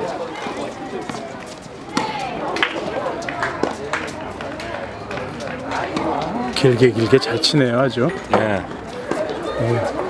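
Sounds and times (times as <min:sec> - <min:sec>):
voices chattering: 0:00.0 - 0:10.0
tennis ball hitting rackets and court: 0:01.0 - 0:06.5, 0:08.3 - 0:10.0.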